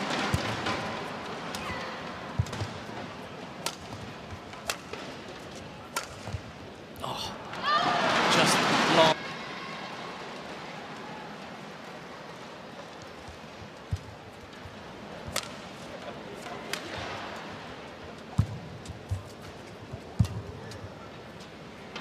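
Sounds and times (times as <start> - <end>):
racket striking shuttlecock: 2.4 - 2.9, 3.6 - 5.0, 5.9 - 6.4, 15.2 - 15.6.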